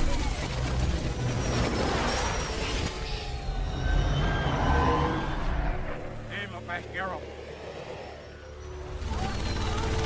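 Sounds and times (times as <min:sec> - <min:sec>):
reversed movie soundtrack roar: 0:00.0 - 0:10.0.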